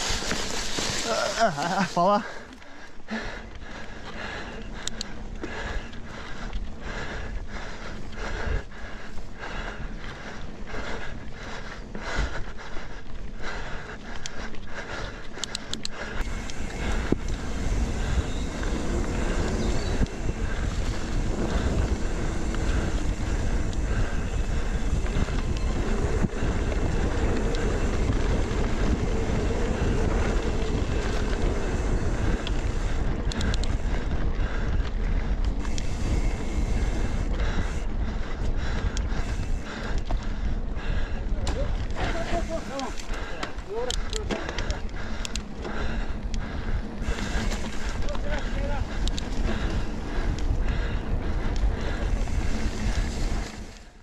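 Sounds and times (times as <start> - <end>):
bike tyres rumbling over dirt: 0.0 - 2.5, 13.3 - 54.0
bike rattling: 0.0 - 54.0
wind on the microphone: 16.2 - 53.9.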